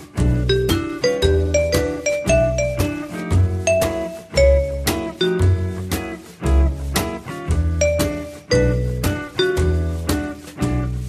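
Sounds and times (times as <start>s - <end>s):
instrumental music with bass line: 0.0s - 11.0s.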